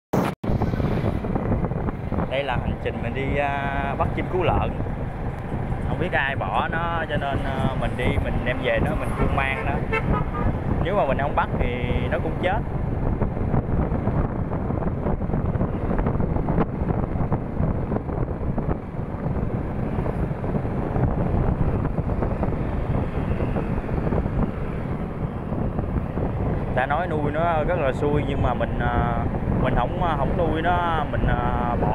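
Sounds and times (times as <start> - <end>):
wind buffeting microphone: 0.2 - 31.9
motorbike engine and road rumble: 0.5 - 31.9.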